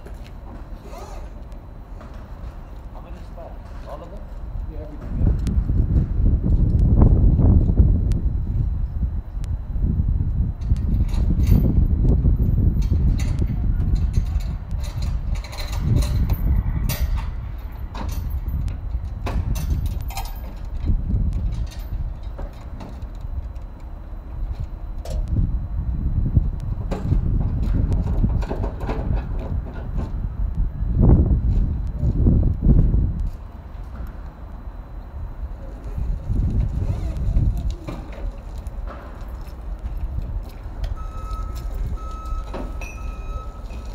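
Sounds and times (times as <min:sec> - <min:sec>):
wind buffeting microphone: 0:01.6 - 0:43.9.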